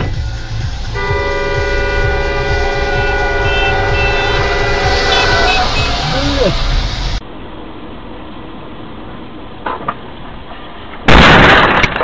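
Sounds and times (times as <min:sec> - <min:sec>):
car driving rumble: 0:00.0 - 0:12.0
vehicle horn blast: 0:00.9 - 0:06.7.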